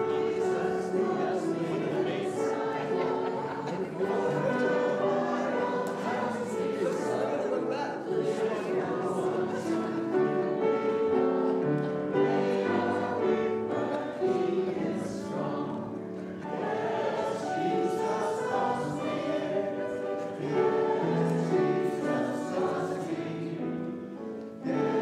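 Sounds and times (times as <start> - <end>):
choir singing church music: 0.0 - 25.0.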